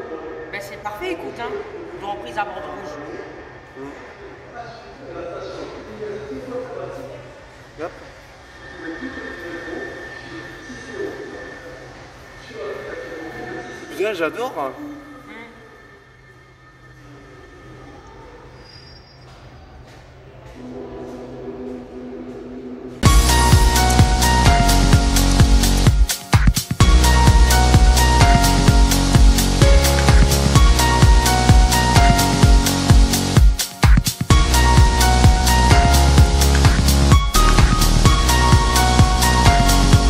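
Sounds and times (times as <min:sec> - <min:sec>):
metro train humming in tunnel: 0:06.4 - 0:18.7, 0:20.2 - 0:24.8
metro train equipment humming: 0:20.2 - 0:40.0
steady tone: 0:23.0 - 0:40.0.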